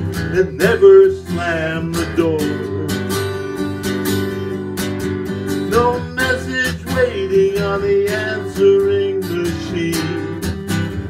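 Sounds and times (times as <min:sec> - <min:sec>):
man singing: 0:00.0 - 0:03.7, 0:05.6 - 0:10.7
acoustic guitar strumming: 0:00.0 - 0:11.0.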